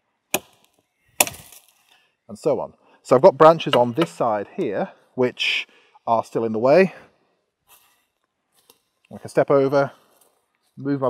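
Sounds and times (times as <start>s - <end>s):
axe chopping wood: 0.3s - 1.8s, 3.6s - 4.2s.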